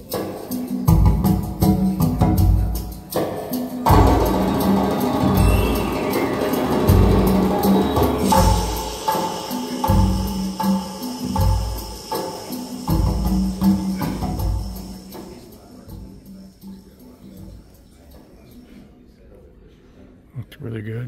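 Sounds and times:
music with percussion: 0:00.0 - 0:18.6
deep bass beat: 0:00.9 - 0:03.2, 0:03.9 - 0:17.6.

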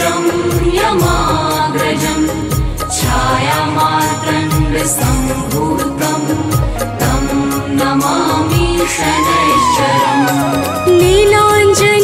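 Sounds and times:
chanted devotional melody: 0:00.0 - 0:12.0.

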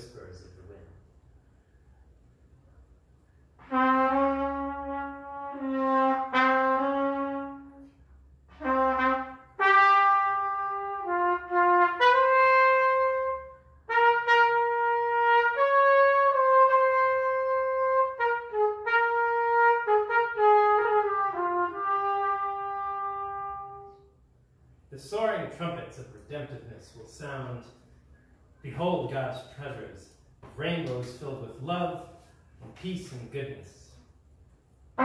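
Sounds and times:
solo trumpet slow melody: 0:03.5 - 0:24.2.

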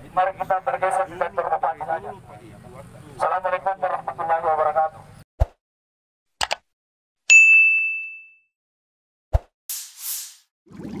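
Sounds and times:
bell-like notification ding: 0:07.3 - 0:08.5.

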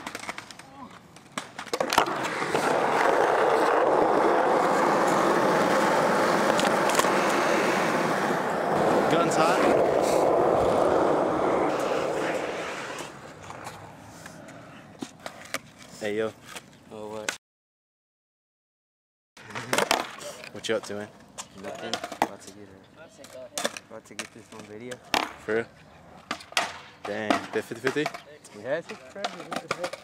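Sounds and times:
skateboard clacks: 0:00.0 - 0:13.8, 0:19.4 - 0:20.3, 0:21.4 - 0:22.6, 0:23.2 - 0:25.6, 0:26.2 - 0:30.0
skateboard wheels rolling: 0:00.0 - 0:16.7, 0:19.4 - 0:30.0.

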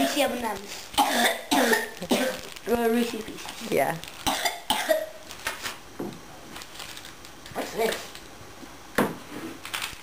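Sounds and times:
person coughing: 0:01.0 - 0:02.5, 0:04.3 - 0:05.1.

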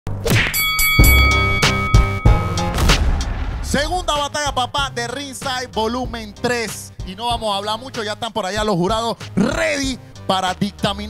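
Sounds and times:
heavy hits over music: 0:00.3 - 0:04.4
high ringing tone: 0:00.5 - 0:02.7.

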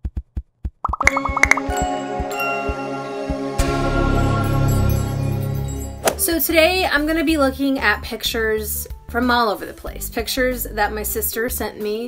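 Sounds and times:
bright plinking notes: 0:00.9 - 0:02.8
light gentle music: 0:01.0 - 0:12.0.

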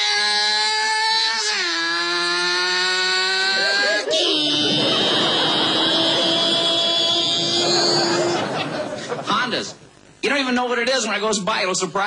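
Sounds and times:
high-revving motorcycle engine: 0:02.0 - 0:03.6.

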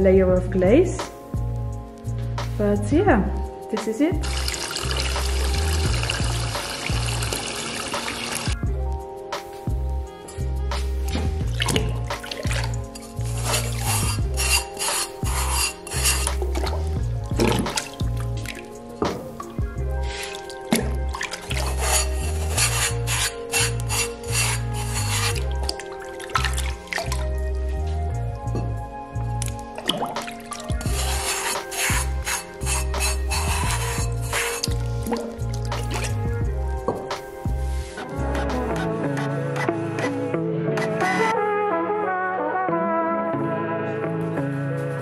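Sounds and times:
background music with steady beat: 0:00.0 - 0:45.0
water splashing: 0:04.2 - 0:08.6, 0:11.1 - 0:27.4, 0:29.4 - 0:36.4
sponge rubbing on pot: 0:12.5 - 0:17.0, 0:19.3 - 0:20.6, 0:21.2 - 0:26.7, 0:30.6 - 0:36.3.

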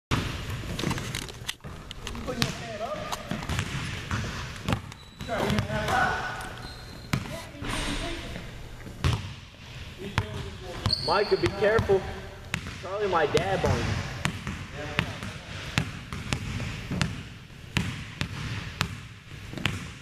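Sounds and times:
basketball bouncing on hardwood: 0:03.3 - 0:05.9, 0:09.0 - 0:09.4, 0:11.8 - 0:20.0
voices talking: 0:10.0 - 0:14.1.

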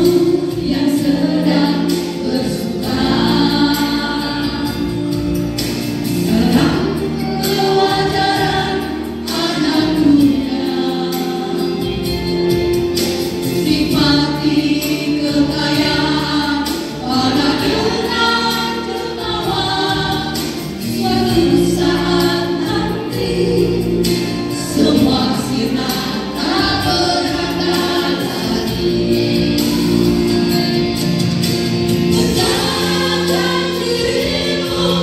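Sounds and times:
women's vocal group singing gospel: 0:00.0 - 0:35.0.

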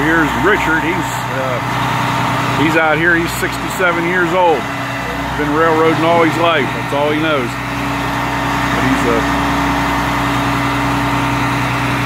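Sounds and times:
diesel truck engine idling: 0:00.0 - 0:12.0.

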